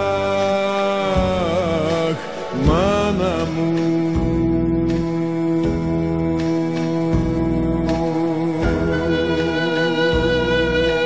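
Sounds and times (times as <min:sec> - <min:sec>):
man singing ornamented vocal: 0:00.0 - 0:11.0
band playing: 0:06.8 - 0:11.0.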